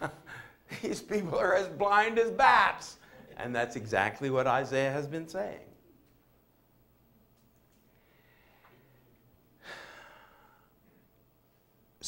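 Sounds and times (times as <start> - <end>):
man sighing breath: 9.6 - 10.7.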